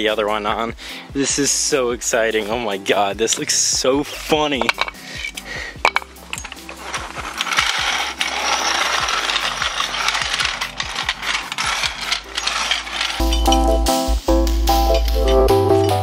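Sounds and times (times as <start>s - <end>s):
metal floor jack clicking and rattling: 4.6s - 13.7s.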